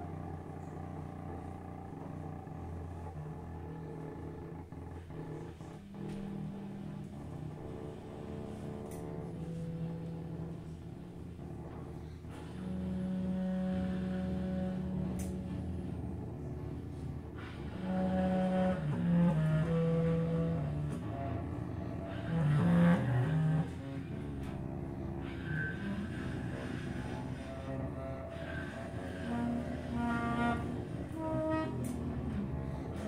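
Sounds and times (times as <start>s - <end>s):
bowed cello: 0.0s - 33.0s
contrabass clarinet: 0.0s - 33.0s
low held note: 0.0s - 33.0s
low rumbling drone: 0.0s - 33.0s.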